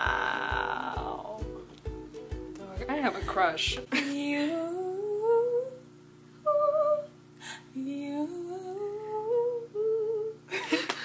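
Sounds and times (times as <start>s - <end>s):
person humming a slow melody: 0.0s - 1.7s, 4.1s - 10.6s.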